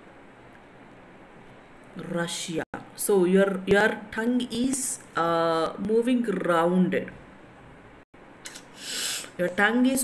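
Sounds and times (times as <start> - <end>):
loud breathy hiss: 8.7 - 9.4.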